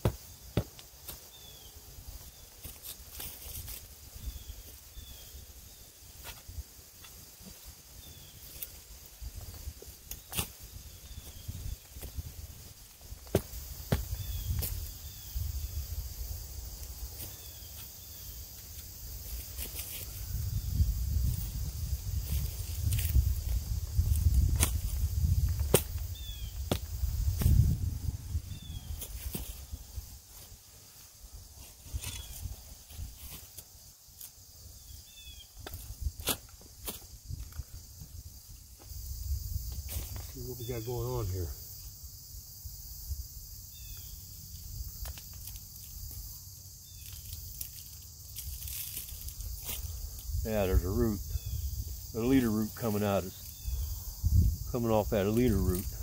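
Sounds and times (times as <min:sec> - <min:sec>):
spade chopping into soil: 0:13.2 - 0:14.8, 0:25.6 - 0:26.0, 0:35.6 - 0:37.1.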